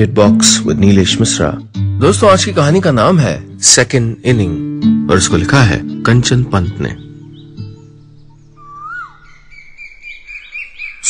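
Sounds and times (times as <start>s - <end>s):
acoustic guitar notes ringing: 0.0s - 8.7s
bird whistling and chirping: 6.9s - 11.0s.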